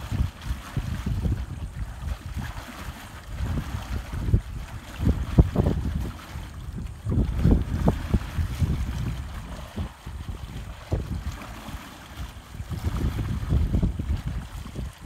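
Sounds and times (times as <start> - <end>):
water churning around posts: 0.0 - 15.0
wind buffeting microphone: 0.0 - 15.0.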